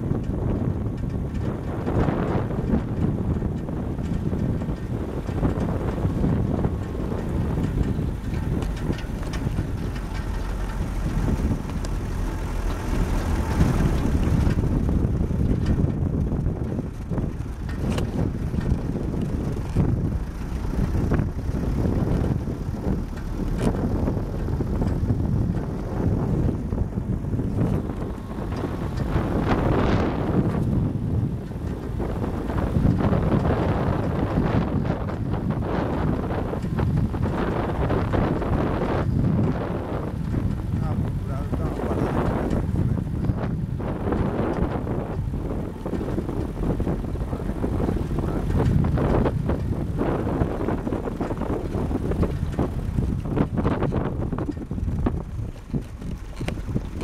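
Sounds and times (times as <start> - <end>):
knocks and rattles over bumps: 0.0 - 57.0
vehicle rumbling on dirt road: 0.0 - 57.0.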